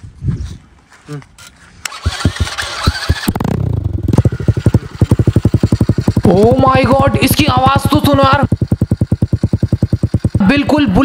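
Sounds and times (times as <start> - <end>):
dirt bike engine cranking: 1.8 - 11.0
dirt bike engine idling: 1.9 - 11.0.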